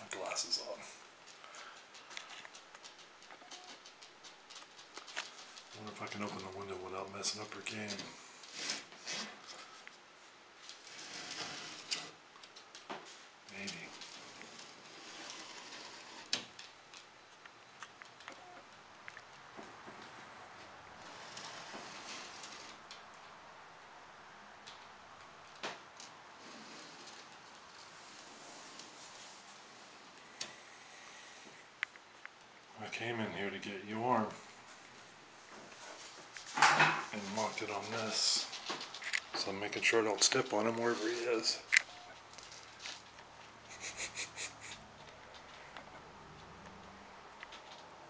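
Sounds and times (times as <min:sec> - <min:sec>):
lizard claws scraping: 0:13.6 - 0:16.5, 0:21.0 - 0:23.0.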